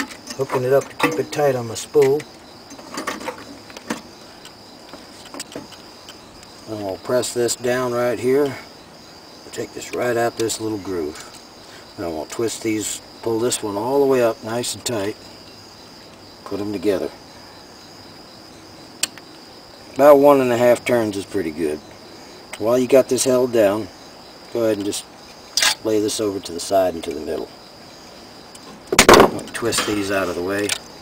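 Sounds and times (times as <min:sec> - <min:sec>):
faint high-pitched whine: 0:00.0 - 0:31.0
faint hiss: 0:00.0 - 0:31.0.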